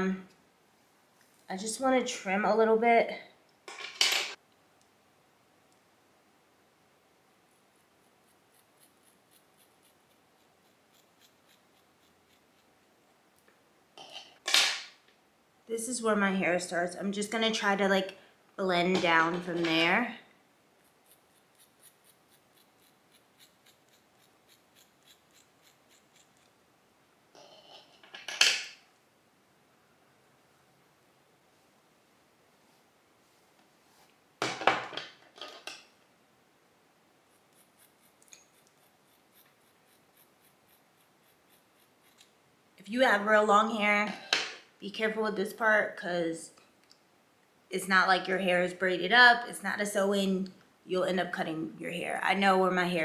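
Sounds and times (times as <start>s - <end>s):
scissors snipping hair: 8.6s - 12.7s, 21.0s - 26.6s.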